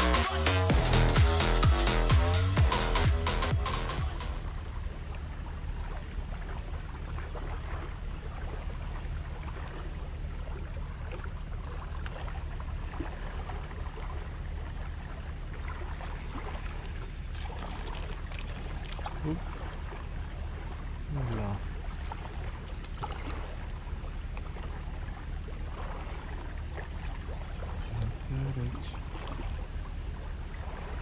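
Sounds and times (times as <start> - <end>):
faint water sounds: 0.0 - 31.0.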